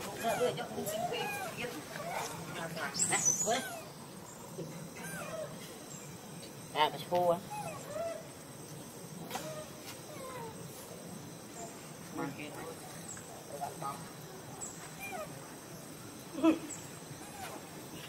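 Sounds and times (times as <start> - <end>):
monkeys chirping and squealing: 0.0 - 5.6, 7.4 - 8.4, 9.3 - 10.6, 14.6 - 15.4.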